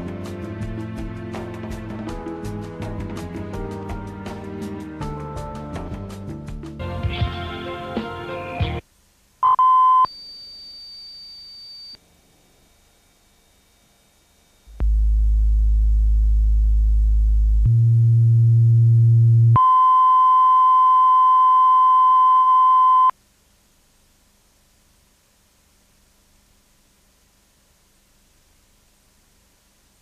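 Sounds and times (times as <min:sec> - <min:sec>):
short test tone beep: 0:09.4 - 0:12.0, 0:19.6 - 0:23.1
steady line-up tone: 0:13.5 - 0:23.1
loud low hum: 0:14.7 - 0:19.6
faint high whistle: 0:19.6 - 0:23.2.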